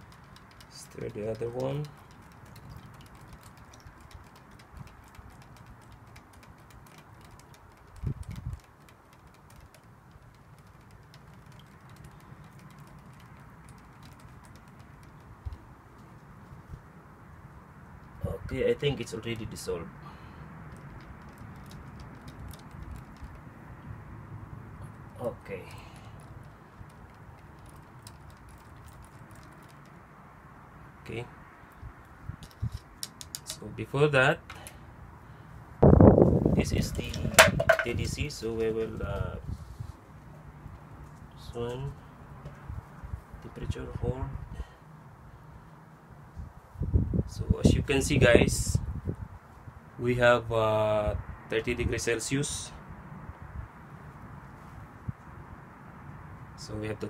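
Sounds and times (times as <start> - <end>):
stick clicking against plastic cup: 0.0 - 15.6, 32.4 - 33.6, 37.1 - 38.0.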